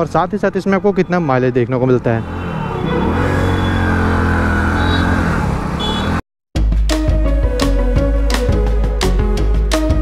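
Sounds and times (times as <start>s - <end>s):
motorcycle engine pulling away: 2.2s - 6.2s.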